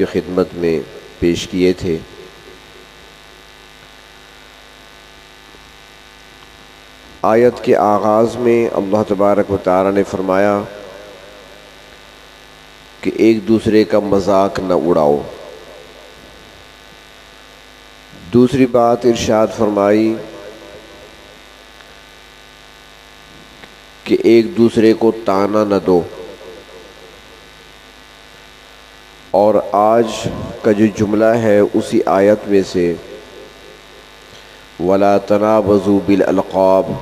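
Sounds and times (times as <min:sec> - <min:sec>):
electrical mains hum: 0:00.0 - 0:37.0.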